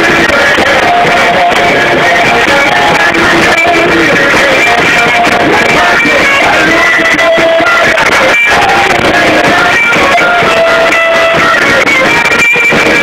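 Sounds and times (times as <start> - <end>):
guitar-led rock music: 0.0 - 13.0.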